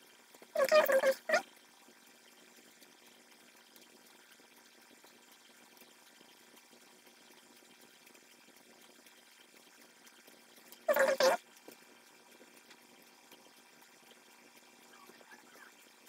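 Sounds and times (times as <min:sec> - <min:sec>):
soft ticks: 0:02.3 - 0:16.0.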